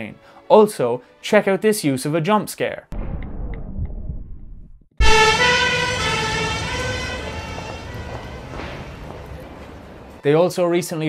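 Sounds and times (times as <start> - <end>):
low rumble: 2.9 - 5.4
loud vehicle horn blast: 5.0 - 9.0.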